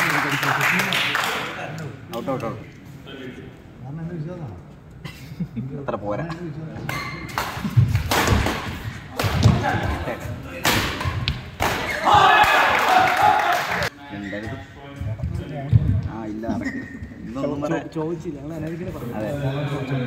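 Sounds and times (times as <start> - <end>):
people shouting: 11.8 - 13.8.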